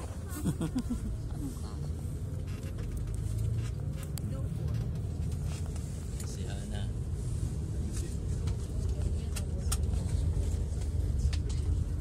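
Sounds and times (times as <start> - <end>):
bus engine and road rumble: 0.0 - 12.0.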